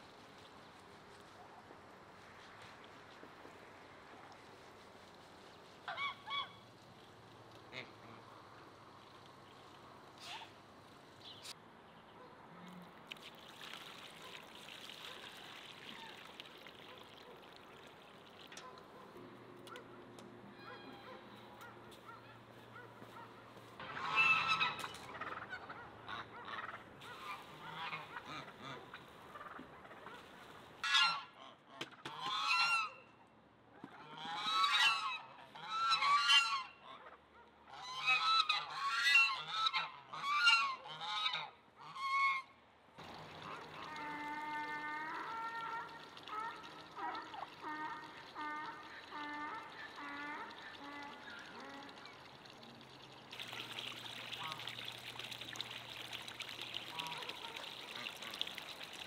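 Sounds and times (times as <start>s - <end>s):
geese honking: 20.5s - 28.9s, 30.8s - 31.4s, 34.1s - 42.5s.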